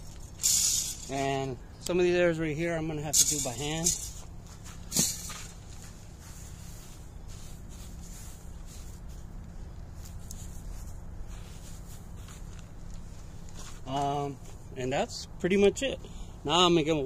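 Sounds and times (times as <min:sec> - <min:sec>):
steady low background noise: 0:00.0 - 0:17.0
granules scraping over soil: 0:02.9 - 0:14.4.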